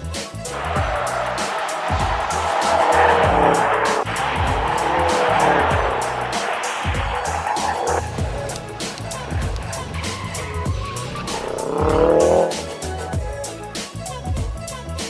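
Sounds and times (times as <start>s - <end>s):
background music with steady beat: 0.0s - 15.0s
tyres squealing: 0.3s - 13.2s.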